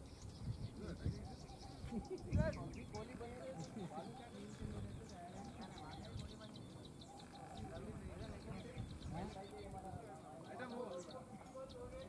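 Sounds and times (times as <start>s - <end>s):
distant men calling: 1.2s - 12.0s.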